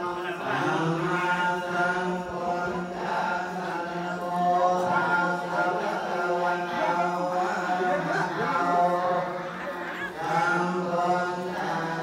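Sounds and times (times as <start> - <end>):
monks chanting in unison: 0.0 - 12.0.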